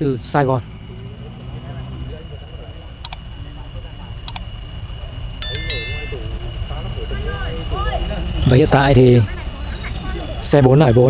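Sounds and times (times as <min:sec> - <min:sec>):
sharp clicks: 0:05.4 - 0:06.2
high metallic ringing: 0:05.4 - 0:06.5.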